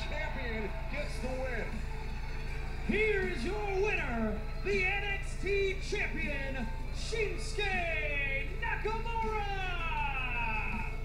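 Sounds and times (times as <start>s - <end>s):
ring announcer speaking: 0.0s - 1.8s, 2.8s - 11.0s
broadcast music: 0.0s - 11.0s
person speaking over music: 2.9s - 11.0s.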